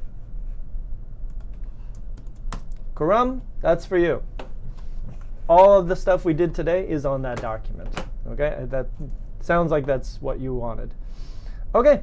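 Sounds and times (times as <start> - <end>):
computer keyboard typing: 1.3 - 2.9.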